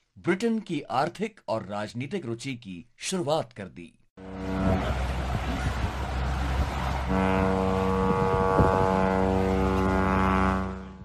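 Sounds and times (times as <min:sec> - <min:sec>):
electronic drone tone: 0:07.1 - 0:11.0.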